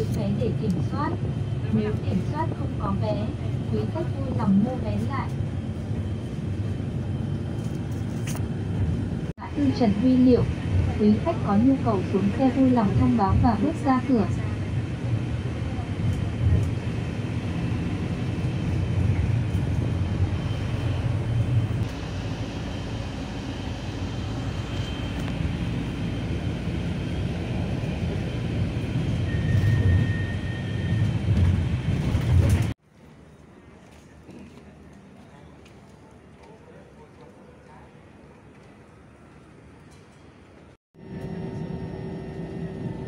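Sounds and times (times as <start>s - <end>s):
bus engine and road rumble: 0.0s - 43.0s.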